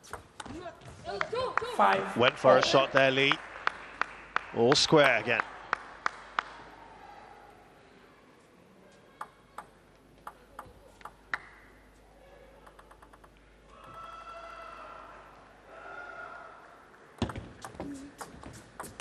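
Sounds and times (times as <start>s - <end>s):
table tennis ball bouncing: 9.2s - 11.6s, 12.6s - 14.0s, 17.2s - 19.0s
table tennis rally clicks: 9.2s - 11.6s, 12.6s - 14.0s, 17.2s - 19.0s.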